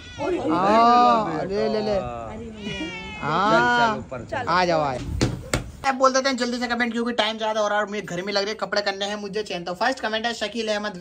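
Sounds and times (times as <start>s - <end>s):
cat meowing: 2.4s - 4.0s.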